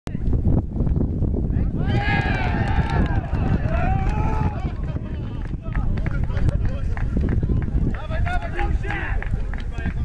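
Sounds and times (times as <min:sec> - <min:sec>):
people shouting in celebration: 0:01.6 - 0:05.0.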